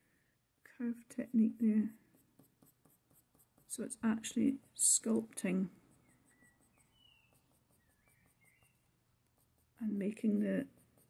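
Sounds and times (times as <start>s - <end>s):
faint high chirps: 6.0s - 8.9s.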